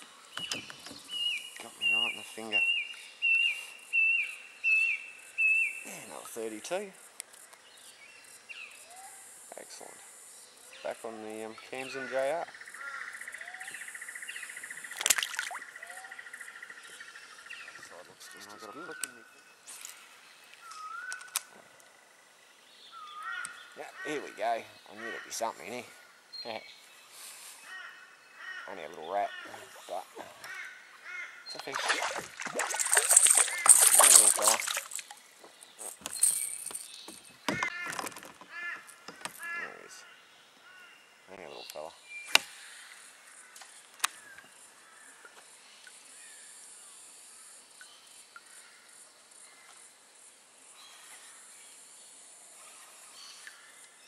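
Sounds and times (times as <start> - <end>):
bird chirps: 0.3 - 6.2, 22.8 - 37.9
insect trilling: 28.4 - 40.0
handling clicks and knocks: 35.7 - 38.5.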